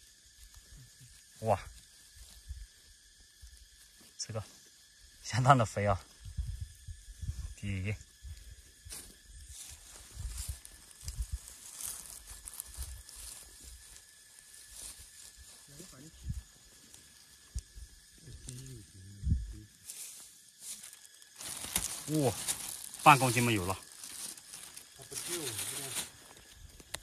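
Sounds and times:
pine needles and leaves rustling: 0:00.0 - 0:27.0.

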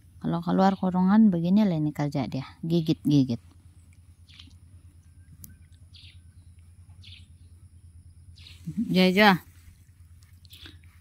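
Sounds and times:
steady low hum: 0:00.0 - 0:11.0
faint bird chirps: 0:02.6 - 0:11.0.

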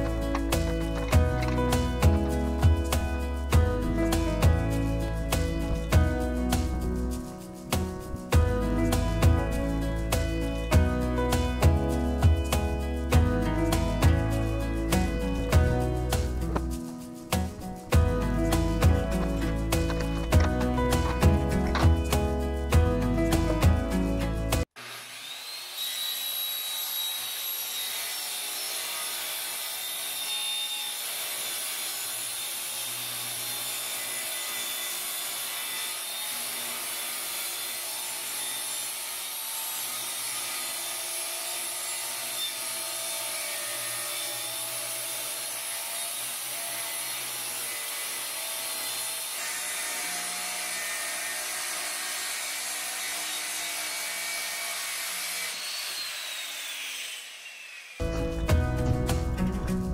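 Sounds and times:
circular saw cutting wood: 0:00.0 - 0:58.6.

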